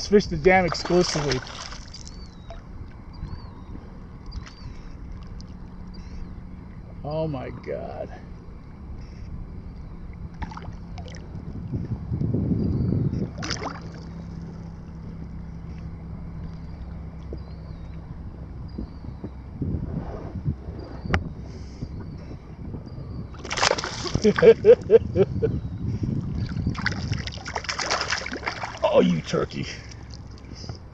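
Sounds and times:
water lapping against boat hull: 0.0s - 7.0s, 9.0s - 11.8s, 13.2s - 18.0s, 23.3s - 24.9s, 26.2s - 30.8s
wind on microphone: 0.0s - 29.0s.

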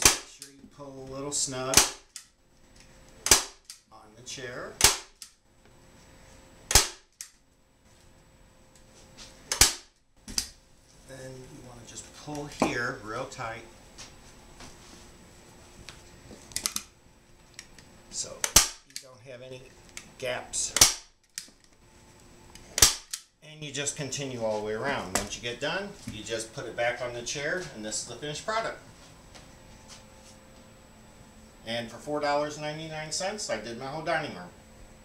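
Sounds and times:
staple gun snap: 1.7s - 2.3s, 3.2s - 3.8s, 4.8s - 5.4s, 6.7s - 7.4s, 9.5s - 10.5s, 16.6s - 16.9s, 18.4s - 19.1s, 20.7s - 21.5s, 22.8s - 23.3s
staple gun snaps: 18.4s - 19.1s.

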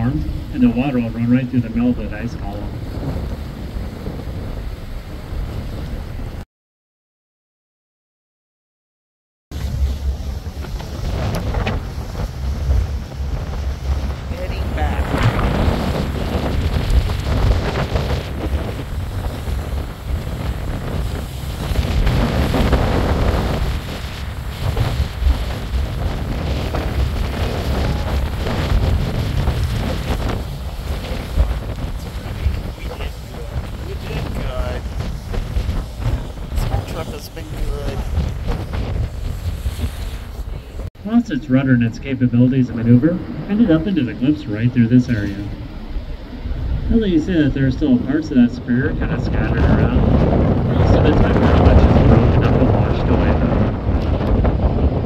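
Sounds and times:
wind buffeting microphone: 0.0s - 6.4s, 9.5s - 55.0s
water washing: 9.6s - 55.0s.

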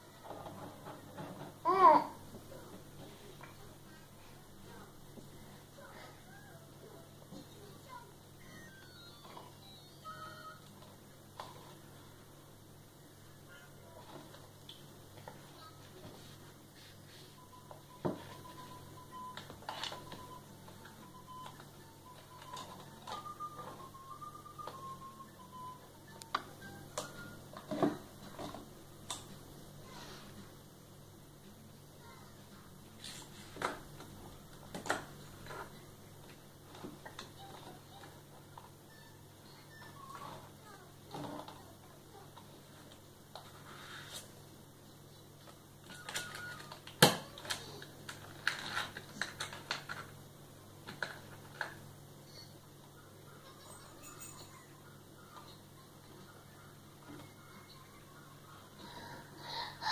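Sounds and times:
faint thin tune: 8.4s - 10.8s, 16.8s - 27.6s
crayons clicking and rattling: 45.9s - 50.1s.

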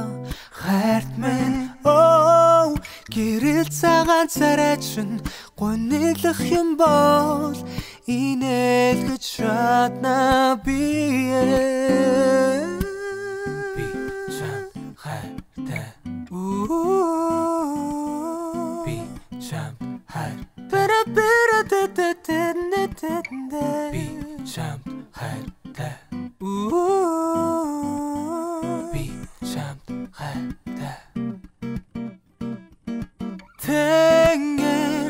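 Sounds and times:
guitar picking low notes: 0.0s - 35.0s.

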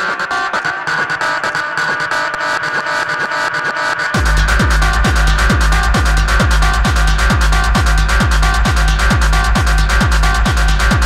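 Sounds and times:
fast ticking percussion: 1.8s - 11.0s
sustained synth chord: 3.9s - 11.0s.

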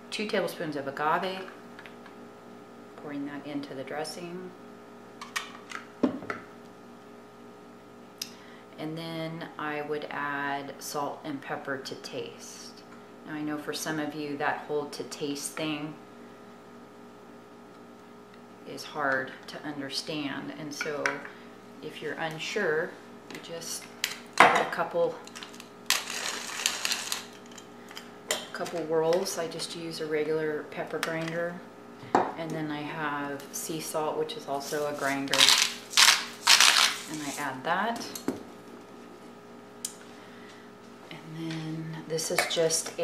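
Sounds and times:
pepper grinder crunching: 25.2s - 28.1s, 34.7s - 37.4s.

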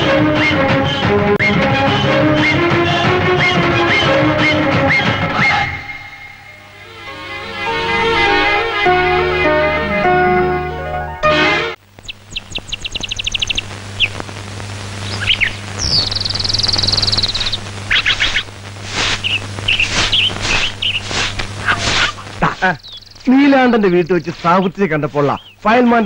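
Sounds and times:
steady low hum: 11.8s - 25.7s
birds chirping and trilling: 12.0s - 14.2s, 15.0s - 18.5s, 19.2s - 26.0s
man's voice: 22.4s - 26.0s.

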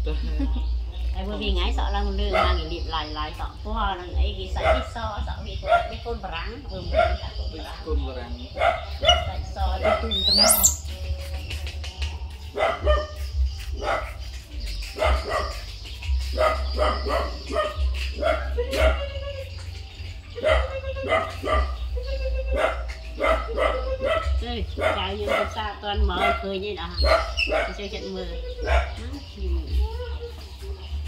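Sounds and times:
wind rumble on microphone: 0.0s - 31.0s
dog barking: 2.3s - 2.7s, 4.6s - 6.2s, 6.9s - 7.4s, 8.5s - 10.8s, 12.5s - 14.2s, 14.9s - 15.7s, 16.3s - 19.1s, 20.3s - 29.1s.

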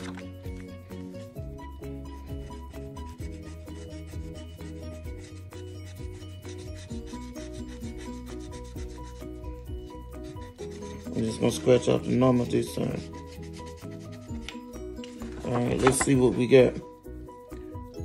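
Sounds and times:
soft background music: 0.0s - 18.0s
scratching lottery ticket: 2.1s - 14.5s.

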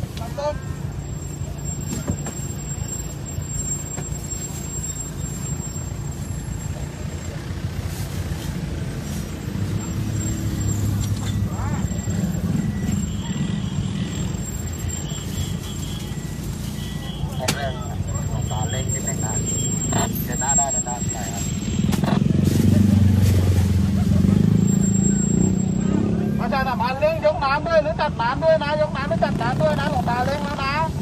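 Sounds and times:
vehicle engine running: 0.0s - 26.9s.

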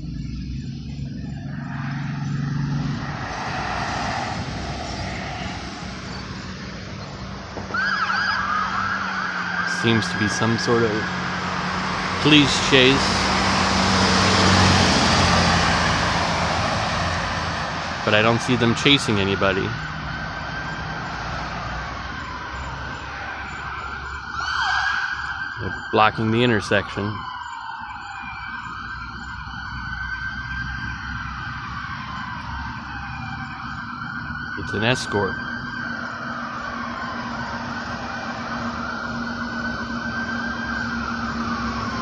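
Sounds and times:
distant police siren: 0.0s - 42.0s
low rumble of vehicles: 0.0s - 42.0s.

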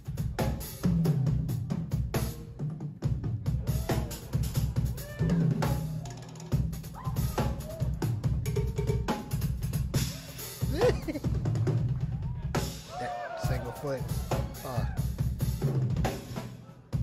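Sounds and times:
drum kit solo: 0.0s - 17.0s.

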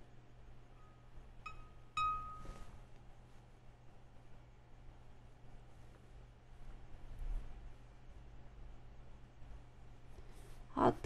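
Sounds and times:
brush tapping porcelain pot: 1.5s - 2.6s.

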